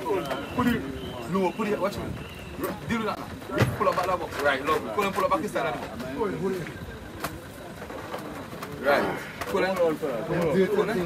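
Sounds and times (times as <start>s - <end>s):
men's voices: 0.0s - 11.0s.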